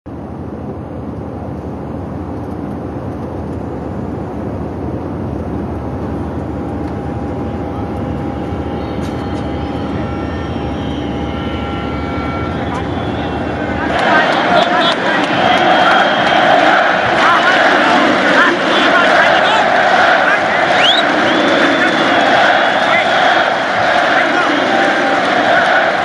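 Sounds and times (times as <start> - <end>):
airliner engine and airflow drone: 0.1 - 24.0.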